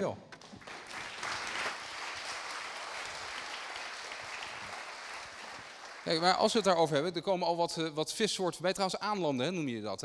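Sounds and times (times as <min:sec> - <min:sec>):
audience applauding: 0:00.4 - 0:06.8.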